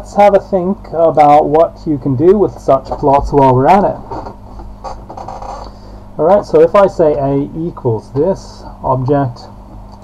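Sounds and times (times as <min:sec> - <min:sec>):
low electrical hum: 0:00.0 - 0:10.0
weak scratchy sounds: 0:02.7 - 0:06.9.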